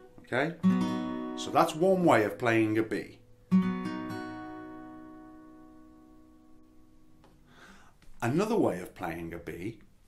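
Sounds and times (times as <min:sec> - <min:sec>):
acoustic guitar chord strummed: 0:00.0 - 0:07.8.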